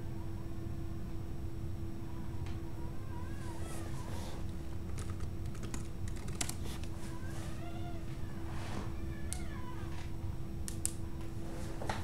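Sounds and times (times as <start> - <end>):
steady hum: 0.0 - 12.0
sharp clicks: 10.6 - 11.0.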